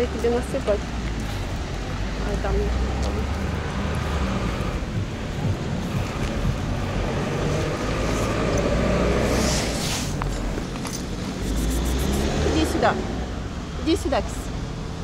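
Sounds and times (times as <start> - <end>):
motor traffic rumble: 0.0 - 15.0.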